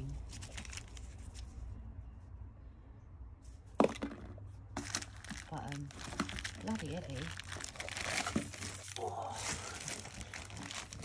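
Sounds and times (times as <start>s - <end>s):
plastic film crinkling: 0.1s - 1.4s, 4.8s - 11.0s.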